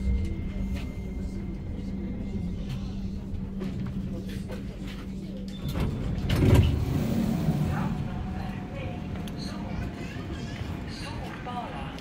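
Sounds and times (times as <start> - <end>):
power doors opening: 5.6 - 7.4.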